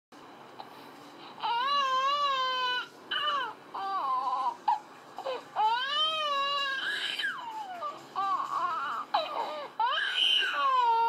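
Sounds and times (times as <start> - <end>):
baby crying through monitor speaker: 1.4 - 11.0.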